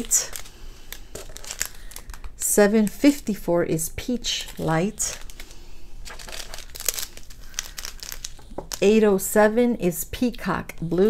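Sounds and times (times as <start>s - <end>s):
woman speaking: 0.0s - 0.4s, 2.4s - 5.2s, 8.8s - 11.0s
plastic bags crinkling: 0.0s - 3.1s, 4.3s - 8.9s.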